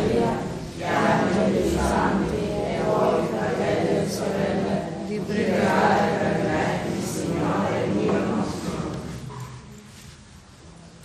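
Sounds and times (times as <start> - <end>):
people chanting: 0.0 - 9.7.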